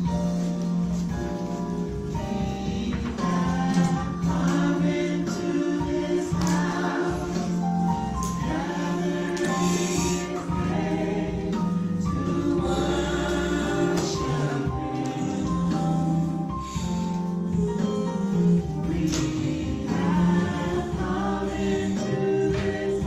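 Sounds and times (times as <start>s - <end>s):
gospel choir singing: 2.0s - 23.0s.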